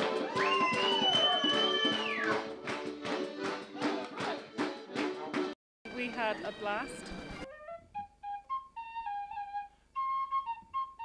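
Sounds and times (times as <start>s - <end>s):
background music with quick beat: 0.0s - 7.5s.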